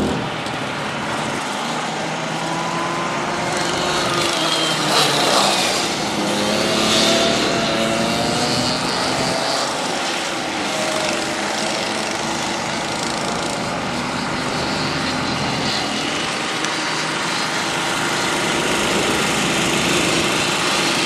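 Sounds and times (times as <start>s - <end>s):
kart engines buzzing: 0.0s - 21.0s.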